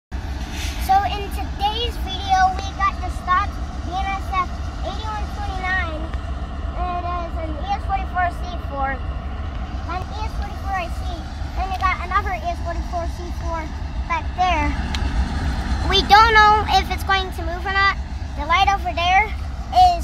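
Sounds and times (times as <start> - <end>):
steady low rumble: 0.1 - 20.0
child speaking: 0.8 - 9.0, 9.8 - 14.9, 15.8 - 20.0.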